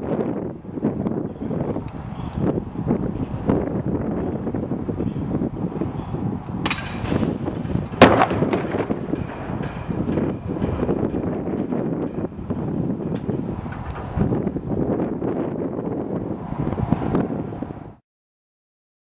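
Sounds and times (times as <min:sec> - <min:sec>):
wind noise on microphone: 0:00.0 - 0:18.0
loud bang of impact: 0:06.6 - 0:12.3
smaller knocks: 0:06.6 - 0:14.3.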